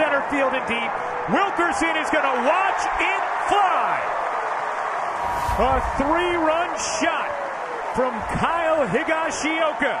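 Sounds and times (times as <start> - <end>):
ballpark crowd cheering: 0.0 - 10.0.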